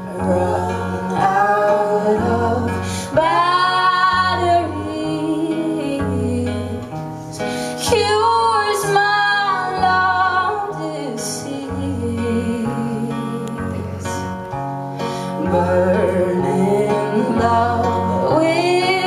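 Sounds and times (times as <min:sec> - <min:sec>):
woman singing: 0:00.0 - 0:14.4, 0:15.3 - 0:19.0
bowed cello: 0:00.0 - 0:19.0
strummed acoustic guitar: 0:00.0 - 0:19.0.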